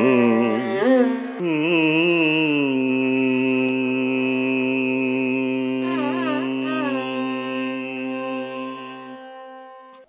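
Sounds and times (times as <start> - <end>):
classical indian vocal music: 0.0 - 10.0.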